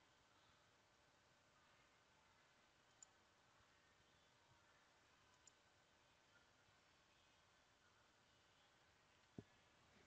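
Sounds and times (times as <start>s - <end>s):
faint computer mouse clicks: 2.9s - 3.2s, 5.3s - 5.6s.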